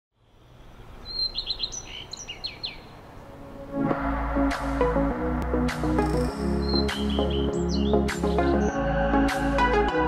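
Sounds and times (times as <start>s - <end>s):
small bird chirping: 0.2s - 3.0s, 6.0s - 8.2s
faint background noise: 0.2s - 3.9s
music: 3.4s - 10.0s.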